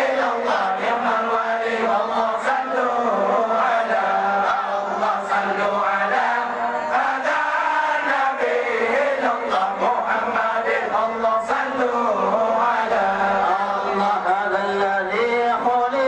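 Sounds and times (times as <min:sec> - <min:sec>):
men chanting: 0:00.0 - 0:16.0.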